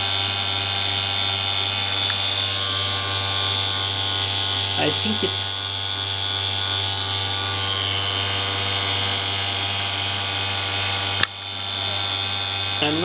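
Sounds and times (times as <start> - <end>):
sputtering rig buzzing hum: 0.0 - 13.0.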